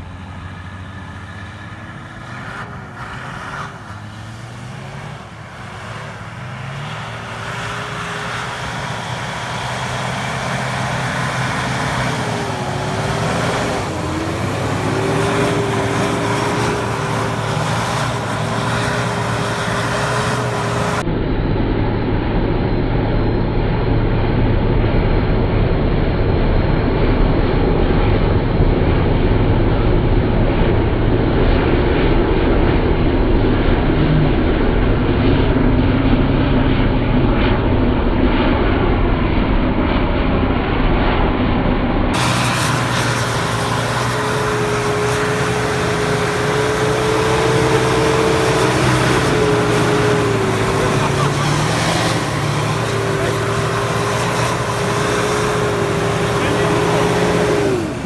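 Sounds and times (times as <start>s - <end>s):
tyres spraying snow and mud: 0.0s - 21.0s, 42.1s - 58.0s
diesel engine revving: 0.0s - 58.0s.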